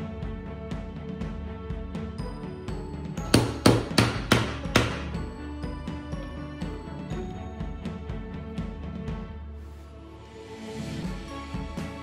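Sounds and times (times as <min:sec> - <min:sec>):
background music: 0:00.0 - 0:12.0
hammer knocking peg into wood: 0:03.2 - 0:05.3.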